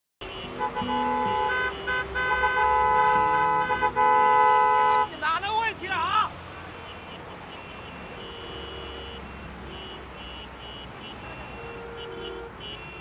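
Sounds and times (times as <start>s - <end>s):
car horns honking: 0.2s - 13.0s.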